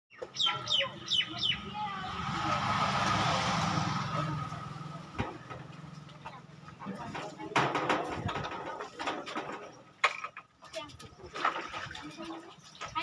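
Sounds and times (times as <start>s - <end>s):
vehicle passing by: 1.0s - 6.8s.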